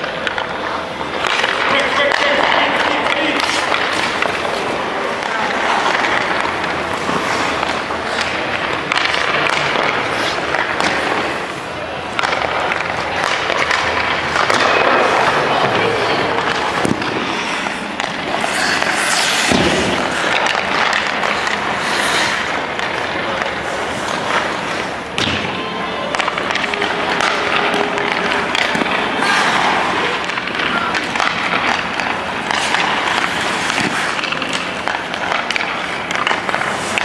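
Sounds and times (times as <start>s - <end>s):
pucks knocking: 0.0s - 37.0s
skate blades scraping ice: 0.0s - 37.0s.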